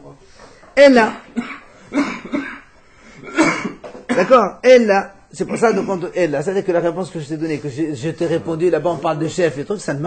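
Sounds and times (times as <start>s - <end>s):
person coughing: 1.4s - 4.5s, 5.5s - 6.1s.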